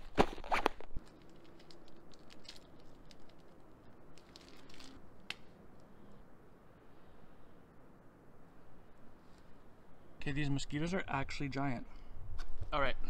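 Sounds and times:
camera set down on rock: 0.0 - 3.3
plastic tube clicking and crinkling: 0.0 - 5.5.

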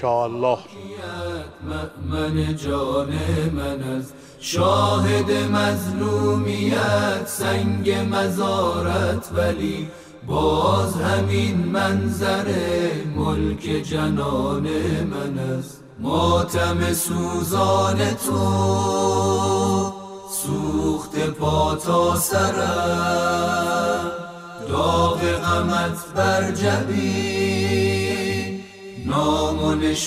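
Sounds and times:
singer breathing: 4.1 - 4.4, 9.8 - 10.2.

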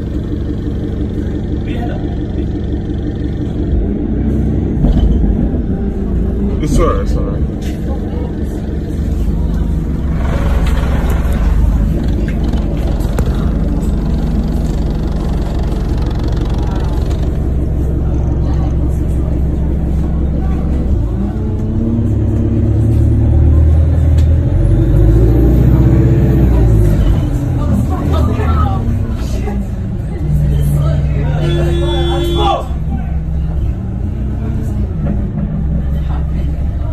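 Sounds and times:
indistinct voices: 0.0 - 36.9
vehicle engine rumbling: 0.0 - 36.9.

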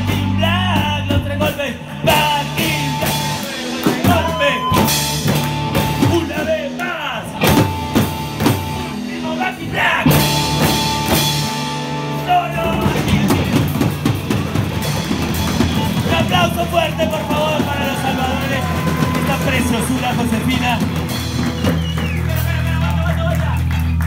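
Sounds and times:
rock band playing: 0.0 - 24.0.

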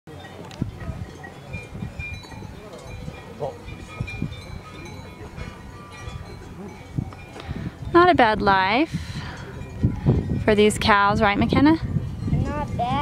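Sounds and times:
cowbells clanking: 0.1 - 13.0.

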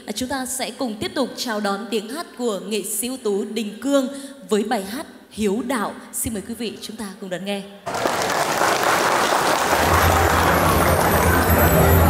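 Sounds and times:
audience applauding: 7.9 - 12.0.

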